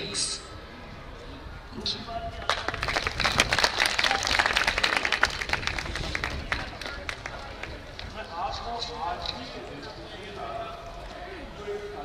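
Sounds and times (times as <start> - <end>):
audience applause: 2.5 - 8.1.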